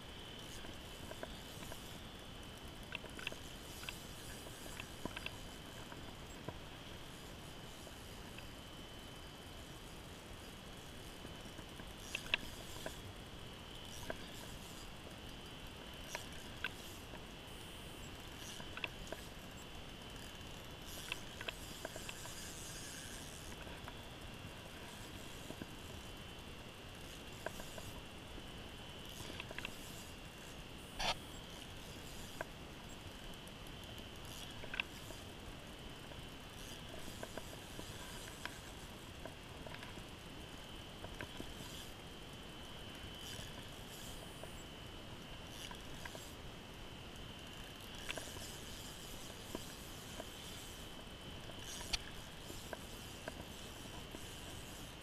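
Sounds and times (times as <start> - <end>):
fishing reel clicks and rustles: 0.3 - 55.0.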